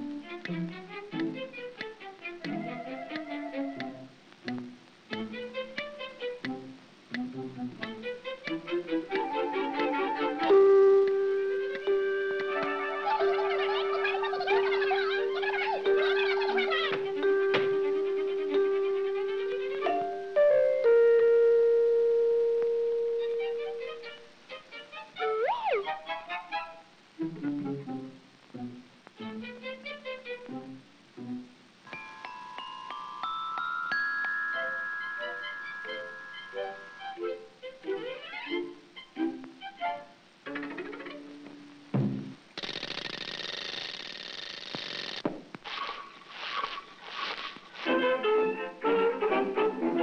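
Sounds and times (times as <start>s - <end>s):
bell-like chime notes: 31.9s - 37.2s.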